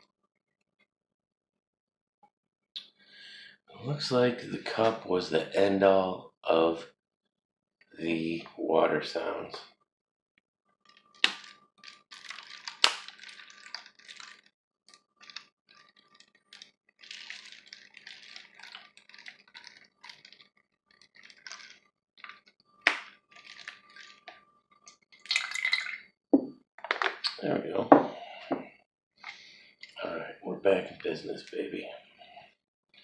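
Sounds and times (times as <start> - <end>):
water trickling into bottle: 10.9 - 26.2.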